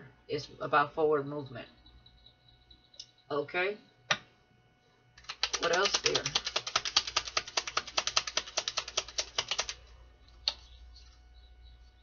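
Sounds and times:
cards being shuffled: 5.2 - 9.8.

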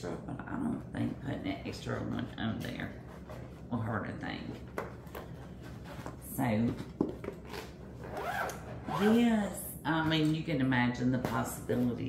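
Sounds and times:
zipper sliding on fabric bag: 7.5 - 9.3.

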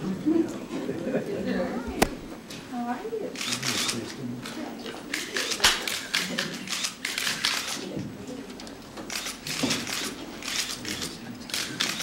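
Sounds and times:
camera shutters clicking: 3.4 - 4.1, 5.1 - 7.9, 9.1 - 12.0.

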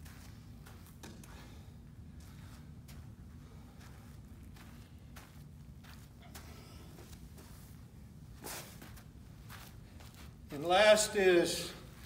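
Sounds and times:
footfalls on artificial turf: 0.0 - 12.0
steady low hum: 0.0 - 12.0.

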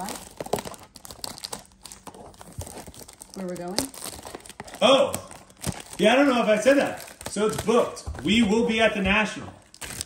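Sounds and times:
plastic shrink wrap tearing: 0.0 - 8.5, 9.6 - 10.0.

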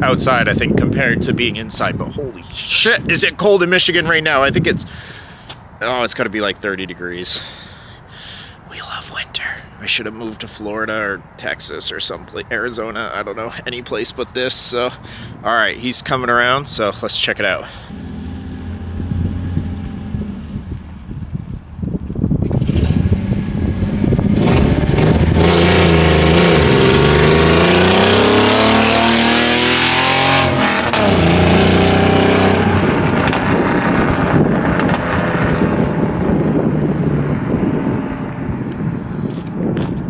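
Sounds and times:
car engine accelerating past: 22.6 - 35.8.

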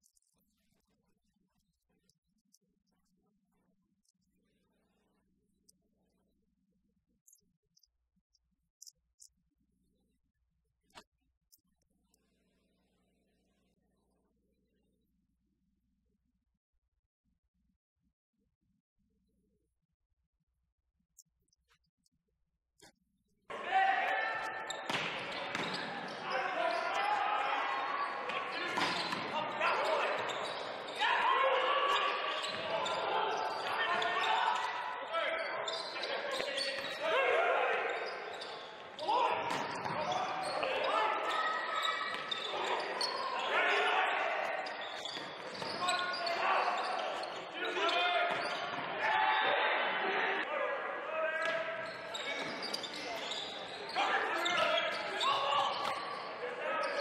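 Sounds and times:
players shouting: 23.5 - 57.0
spectators' voices: 23.5 - 57.0.

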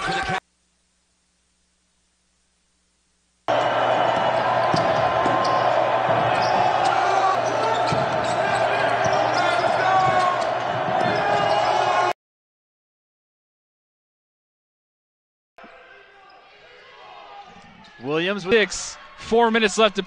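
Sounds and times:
players calling out: 3.5 - 12.1.

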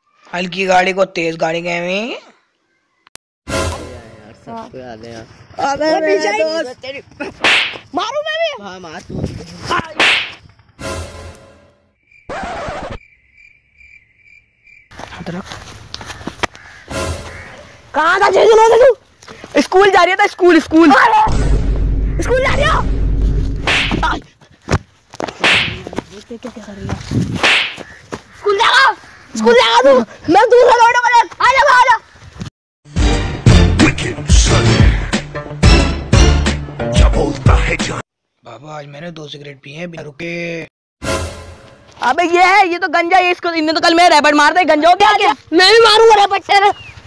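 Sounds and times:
sharp slaps: 7.4 - 7.9, 9.8 - 10.5, 23.6 - 24.2, 25.2 - 26.0, 27.3 - 28.0
sharp whooshing swish: 7.4 - 7.9, 9.9 - 10.4, 23.5 - 24.2, 25.4 - 25.9, 27.2 - 27.8.

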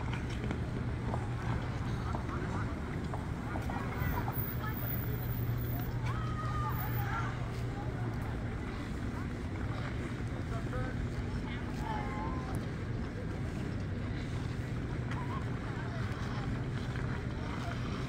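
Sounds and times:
distant voices and shouts: 3.5 - 9.8.

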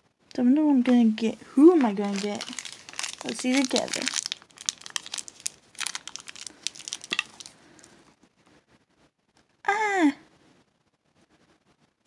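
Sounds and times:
plastic wrapper crumpled and torn: 1.7 - 7.9.

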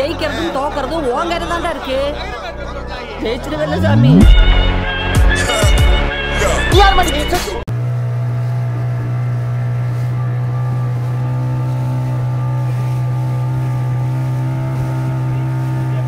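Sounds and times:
motorboat engine running: 3.3 - 4.8, 7.7 - 16.0
intro music: 3.3 - 5.3.

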